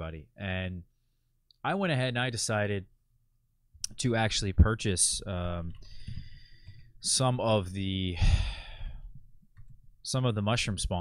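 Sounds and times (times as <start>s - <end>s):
man sighing into microphone: 8.1s - 9.2s.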